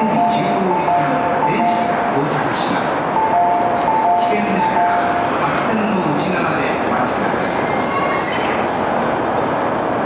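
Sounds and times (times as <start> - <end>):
two-tone warning chime: 0.0 - 2.0, 3.2 - 5.1
train running noise: 0.0 - 10.0.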